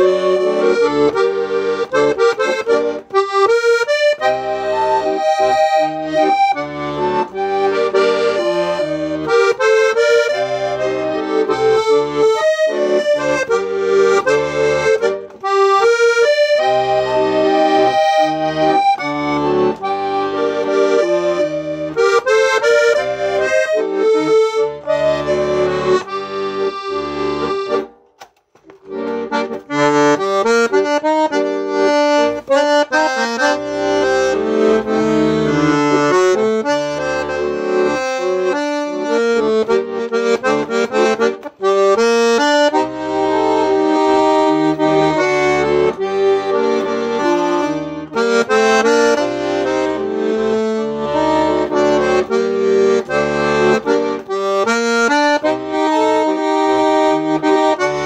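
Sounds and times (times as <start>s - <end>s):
button accordion playing a tune: 0.0s - 58.0s.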